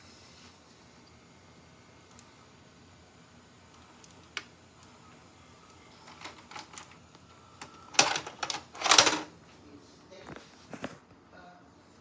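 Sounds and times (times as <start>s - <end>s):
plastic cassette clatter: 7.9s - 9.3s.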